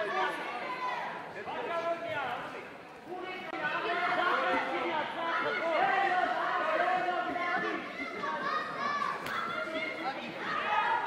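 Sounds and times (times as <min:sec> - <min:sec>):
people chattering in a hall: 0:00.0 - 0:11.0.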